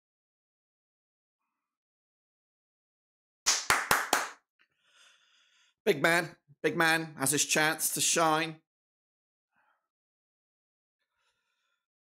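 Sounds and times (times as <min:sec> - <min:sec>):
hand claps: 0:03.4 - 0:04.4.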